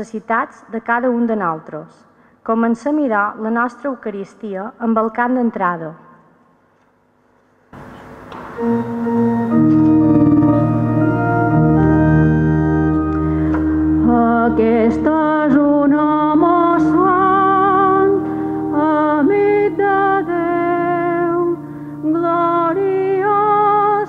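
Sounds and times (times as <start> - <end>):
church organ chords: 7.8 - 24.0
person singing with vibrato: 8.6 - 24.0.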